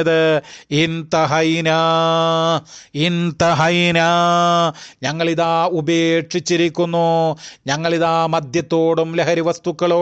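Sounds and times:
man chanting in sing-song voice: 0.0s - 10.0s.

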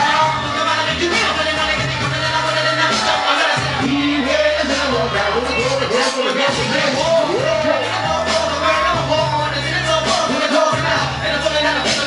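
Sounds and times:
hip-hop backing track with bass: 0.0s - 12.0s
rapper's voice: 0.0s - 12.0s.

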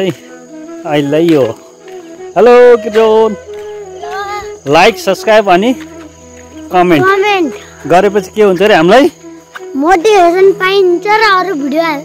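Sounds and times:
crickets buzzing: 0.0s - 12.0s
boy talking loudly: 4.0s - 5.1s, 6.8s - 7.6s, 9.7s - 12.0s.

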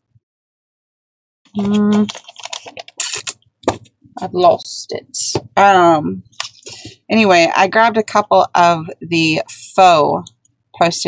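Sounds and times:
planner pages flipping: 1.6s - 3.9s.

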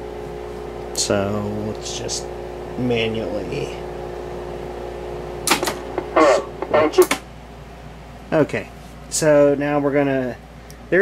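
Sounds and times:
switch click: 5.5s - 5.9s.

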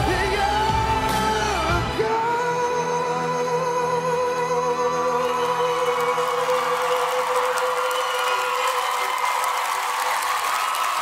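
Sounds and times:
crowd applauding and cheering: 4.4s - 11.0s.

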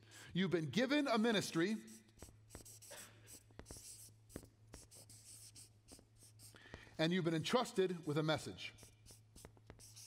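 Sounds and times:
marker pen scratching on paper: 1.2s - 6.6s, 7.9s - 10.0s.

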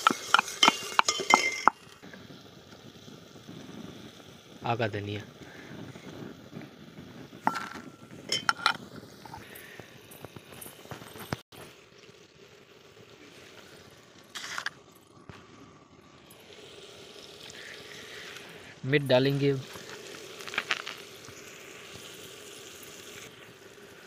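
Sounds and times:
metal kitchenware clinking: 0.0s - 1.8s, 7.5s - 8.8s.

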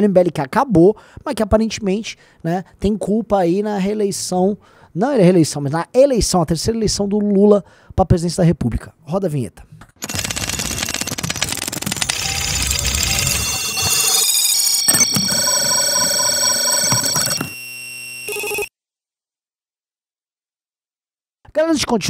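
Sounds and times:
rapid electronic beeps: 10.0s - 18.7s
steady electronic tones: 11.2s - 18.7s
short electronic buzz: 12.0s - 15.3s
static and data noise: 12.0s - 18.7s.

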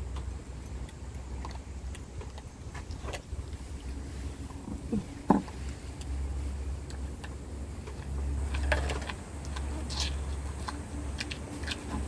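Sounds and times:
dogs crunching dry kibble: 5.5s - 12.0s.

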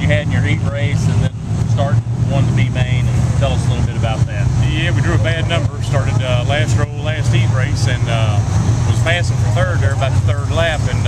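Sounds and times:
man talking: 0.0s - 11.0s
race car engines rumbling: 0.0s - 11.0s.

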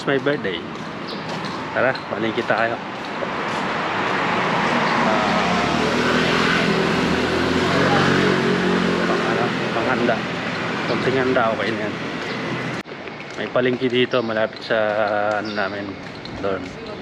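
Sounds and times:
vehicle driving past: 1.3s - 12.8s.

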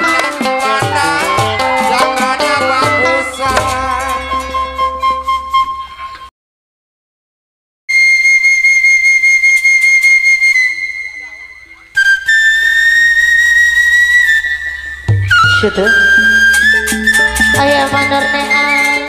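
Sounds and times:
bamboo flute long high notes: 0.0s - 6.3s, 7.9s - 19.0s
gamelan ensemble music: 0.0s - 6.3s, 14.1s - 19.0s.

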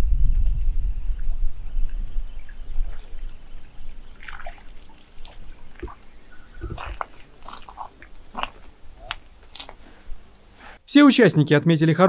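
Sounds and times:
wind buffeting microphone: 0.0s - 10.3s.

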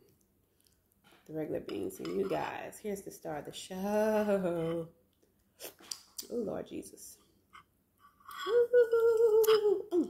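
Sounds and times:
woman humming high note: 8.4s - 10.0s.

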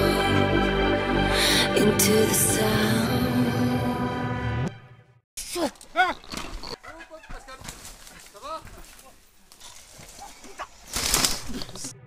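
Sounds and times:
rustling: 6.1s - 11.9s.

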